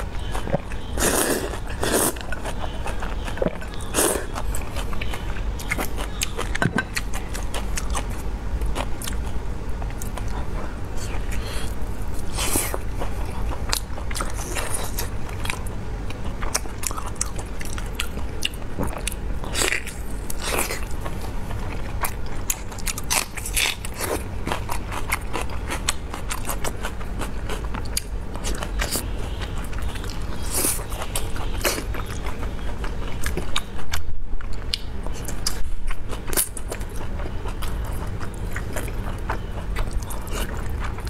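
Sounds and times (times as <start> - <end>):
wet chewing and mouth clicks: 0.0 - 41.0.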